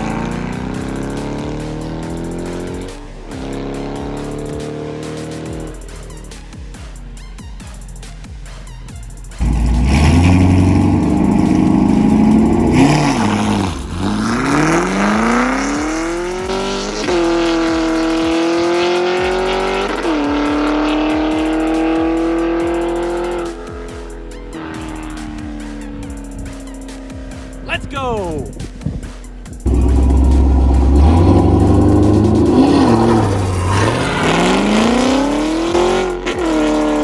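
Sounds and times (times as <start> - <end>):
car engine accelerating hard: 0.0 - 6.5, 9.4 - 27.6, 29.6 - 37.0.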